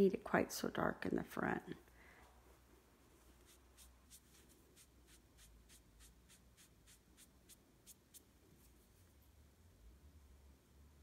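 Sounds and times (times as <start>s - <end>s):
cloth pad rubbing strokes: 2.2s - 9.1s.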